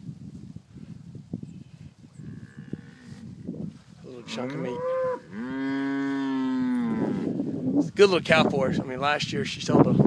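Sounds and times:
cow mooing: 4.2 - 7.4.

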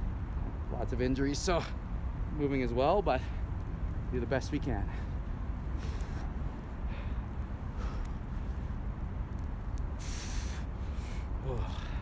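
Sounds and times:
sharp breath out: 10.0 - 12.0.

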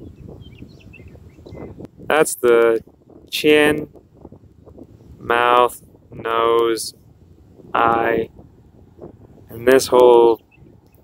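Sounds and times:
faint bird chirps: 0.0 - 1.8
low outdoor rumble: 0.0 - 11.0.

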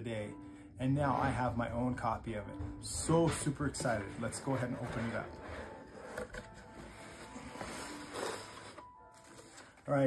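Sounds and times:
rustling and scraping of cardboard: 3.8 - 10.0
cardboard box lid lifting: 4.3 - 8.8.

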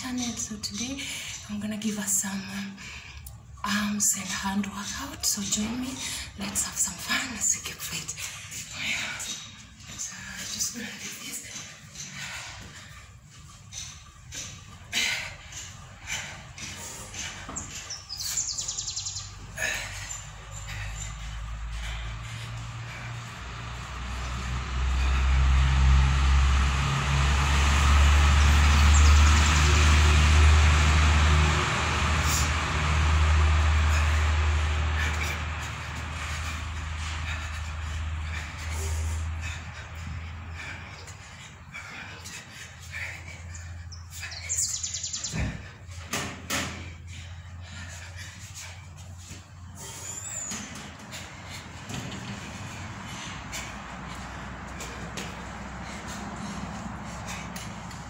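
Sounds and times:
heavy engine humming: 0.0 - 58.0.

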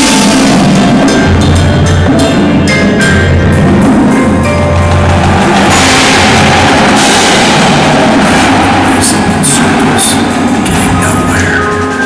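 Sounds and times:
cymbal wash: 0.0 - 12.0
drum kit: 0.0 - 12.0
mallet keyboards: 0.0 - 12.0
snare drums: 0.0 - 12.0
tenor and bass drums: 0.0 - 12.0.

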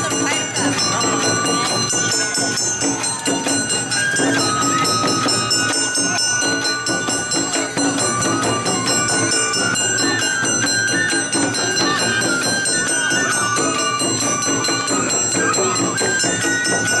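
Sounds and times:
bamboo flute melody: 0.0 - 17.0
drum strikes: 0.0 - 17.0.

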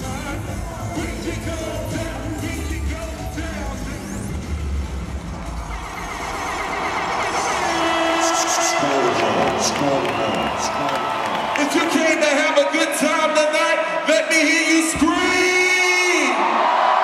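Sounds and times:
pop-rap concert music: 0.0 - 17.0
crowd cheering: 4.8 - 17.0.

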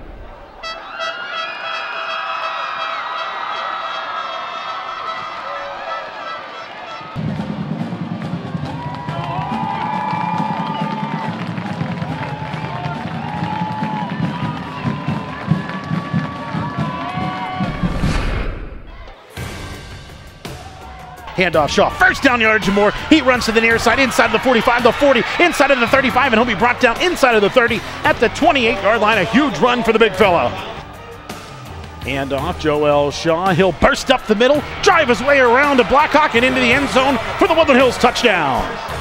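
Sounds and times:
marching band brass playing: 0.6 - 9.7, 34.1 - 39.0.

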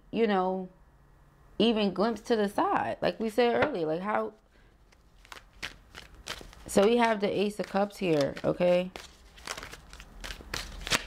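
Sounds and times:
cards rustling and clicking: 4.9 - 11.0.

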